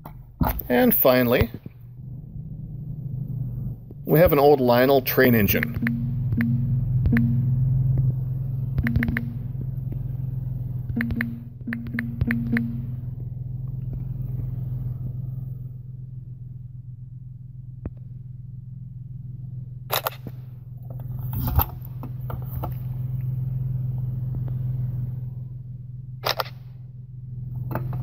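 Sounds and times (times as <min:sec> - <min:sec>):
steady low hum: 0:00.0 - 0:28.0
brief low buzz: 0:05.5 - 0:15.7.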